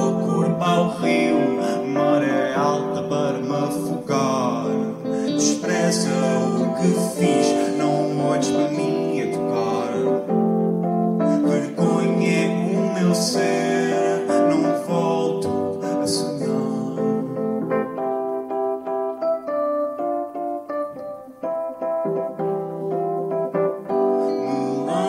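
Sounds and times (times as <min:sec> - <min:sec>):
guitar: 0:00.0 - 0:25.0
sustained keyboard chords: 0:00.0 - 0:25.0.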